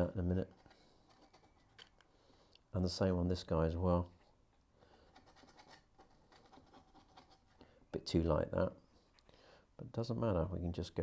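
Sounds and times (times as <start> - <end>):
paintbrush scratching on board: 0.2 - 2.0, 5.0 - 7.6.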